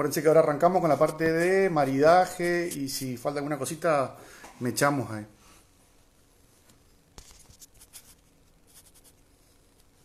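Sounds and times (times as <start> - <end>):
hand rustling phone: 7.2 - 9.2.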